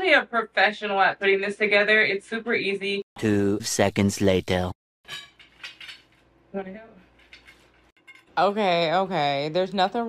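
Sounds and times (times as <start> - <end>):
metal poles clinking: 5.1 - 6.3, 7.1 - 8.4.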